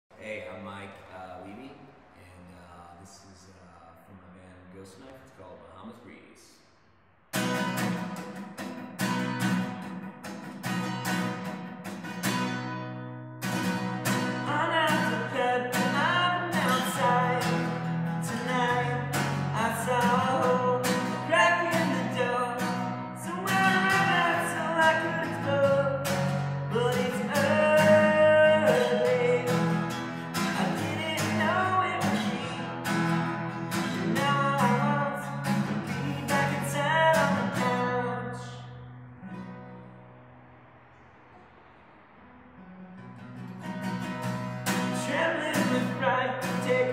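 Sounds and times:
acoustic guitar strumming: 7.3s - 46.9s
man singing: 14.4s - 32.7s, 33.8s - 38.7s, 44.8s - 46.9s.

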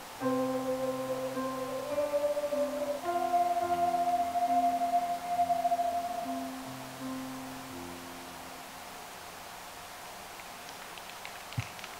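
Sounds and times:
wind ensemble melody: 0.0s - 8.6s
low sustained wind parts: 0.0s - 10.3s.

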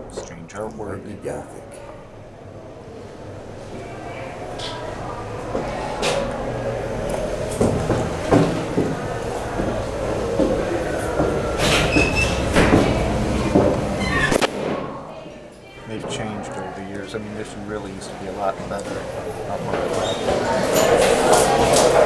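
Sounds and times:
indistinct voices: 0.0s - 22.0s.

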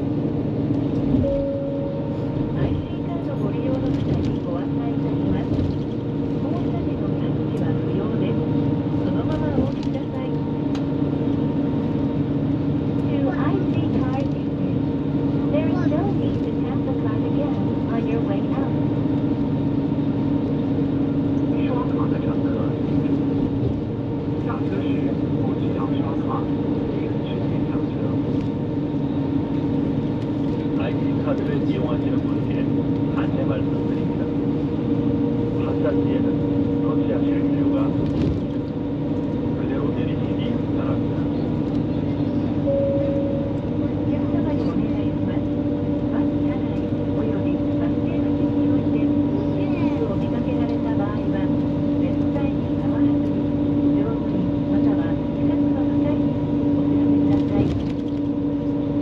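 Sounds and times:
engine drone: 0.0s - 59.0s.

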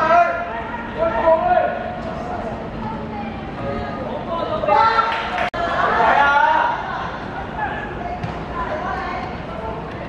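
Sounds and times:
voices shouting and talking: 0.0s - 10.0s.

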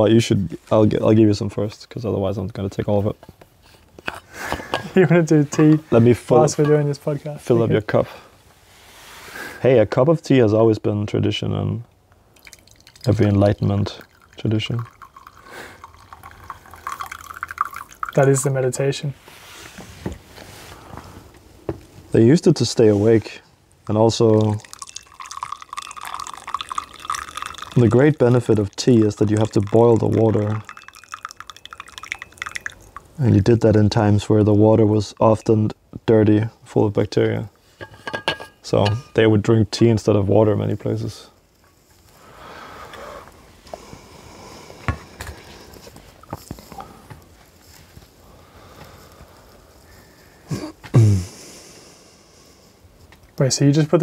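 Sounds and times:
rain dripping on a roof: 12.4s - 18.6s, 23.8s - 33.5s
man laughing softly: 50.5s - 51.5s.

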